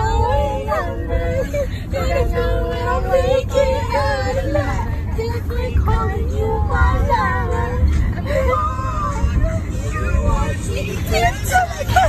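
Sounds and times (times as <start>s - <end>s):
car rumble: 0.0s - 12.0s
girls singing along: 0.0s - 12.0s.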